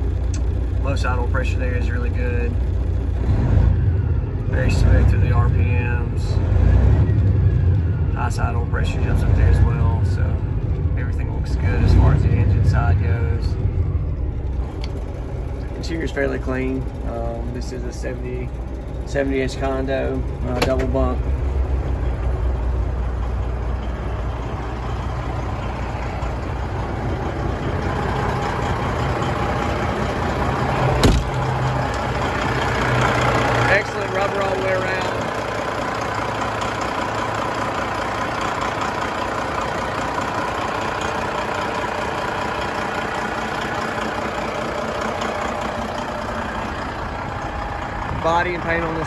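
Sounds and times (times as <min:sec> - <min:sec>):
diesel engine idling: 0:00.0 - 0:49.0.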